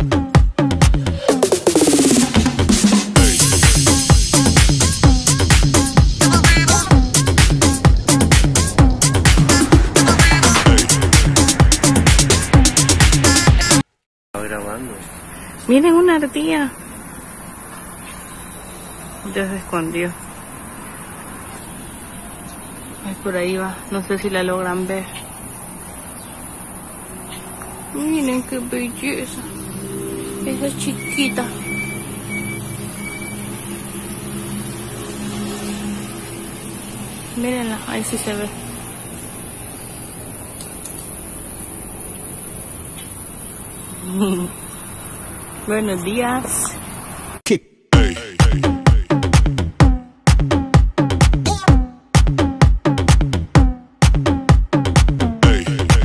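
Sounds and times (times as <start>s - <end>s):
constant outdoor hiss: 1.6s - 12.0s, 14.4s - 47.4s
person laughing: 9.5s - 11.0s.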